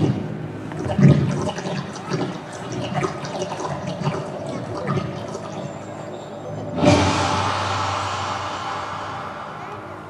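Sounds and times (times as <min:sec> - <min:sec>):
low rumble: 0:06.6 - 0:10.0.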